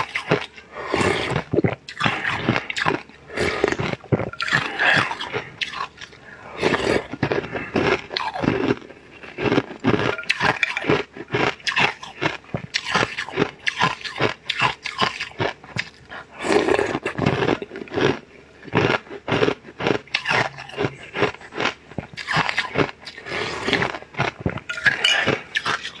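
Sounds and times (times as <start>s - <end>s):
chewing and crunching food: 0.0s - 26.0s.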